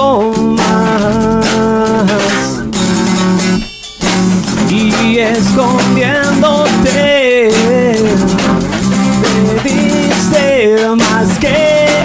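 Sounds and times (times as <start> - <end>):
acoustic guitar: 0.0 - 12.0
electric bass: 0.0 - 12.0.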